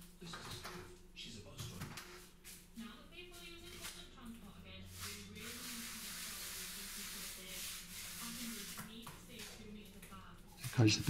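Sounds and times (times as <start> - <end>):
plastic float rasping on render: 5.0 - 9.6.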